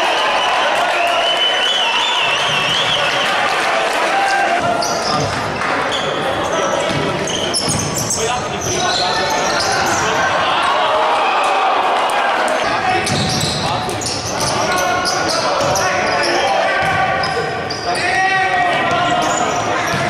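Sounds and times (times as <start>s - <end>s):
hubbub of voices: 0.0s - 20.0s.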